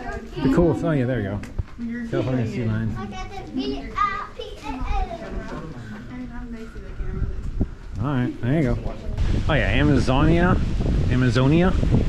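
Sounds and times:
children talking and calling out: 0:00.0 - 0:01.1, 0:01.8 - 0:07.9
crowd of people: 0:00.0 - 0:09.5.

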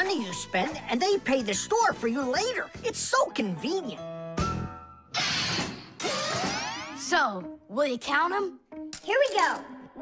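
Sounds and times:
cartoon ratcheting whir: 0:05.2 - 0:07.0.

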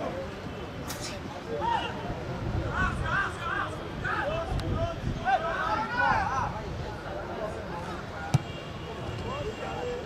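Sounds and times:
players calling faintly: 0:07.6 - 0:10.0
football kick thud: 0:08.3 - 0:08.5.

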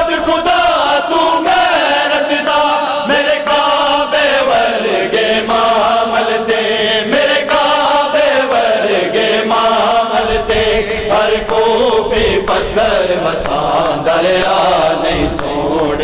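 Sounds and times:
men chanting in unison: 0:00.0 - 0:16.0.

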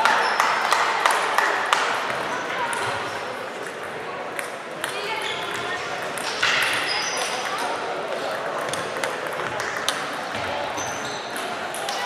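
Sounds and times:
voices chattering in a hall: 0:00.0 - 0:12.0
table tennis balls clicking: 0:08.6 - 0:10.2.

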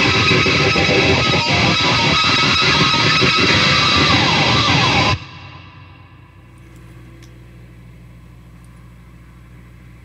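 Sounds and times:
guitar amplifier hum: 0:00.0 - 0:10.0.

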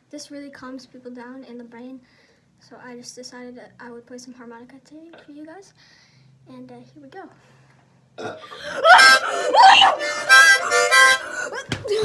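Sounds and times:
harmonica chords: 0:08.6 - 0:12.0.

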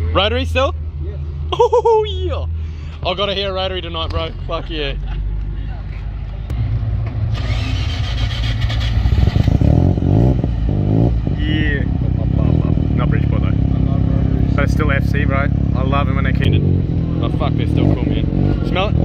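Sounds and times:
car engine revving: 0:02.5 - 0:19.0.

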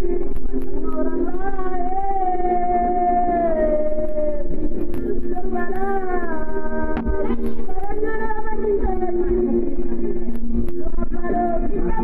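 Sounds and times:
singer holding long note: 0:01.0 - 0:09.7.

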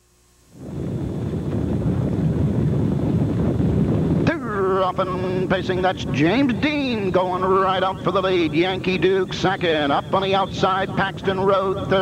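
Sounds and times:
racetrack low rumble: 0:00.6 - 0:12.0
wind buffeting microphone: 0:00.6 - 0:12.0.

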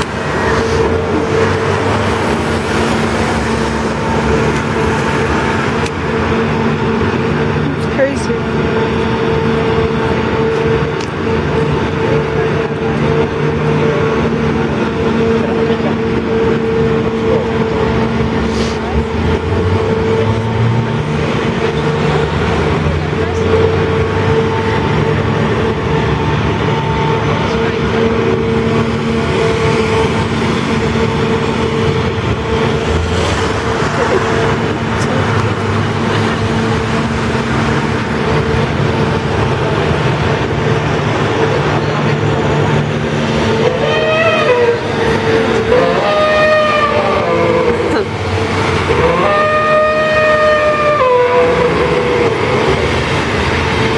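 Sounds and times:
machine engine droning hum: 0:00.0 - 0:53.9
voices of people: 0:10.0 - 0:26.0, 0:41.4 - 0:50.0.

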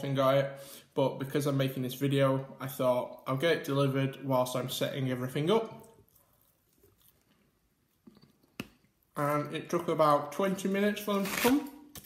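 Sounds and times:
person chewing food: 0:05.8 - 0:09.2.

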